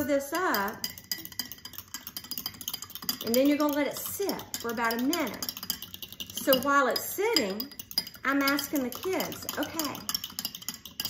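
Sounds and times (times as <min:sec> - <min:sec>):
spoon clinking against glass: 0:00.0 - 0:11.0.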